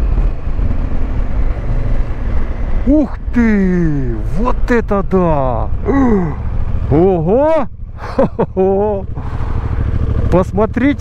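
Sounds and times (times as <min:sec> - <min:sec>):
motorcycle engine running: 0:00.0 - 0:11.0
man making wordless exclamations: 0:02.9 - 0:07.7, 0:08.7 - 0:09.1.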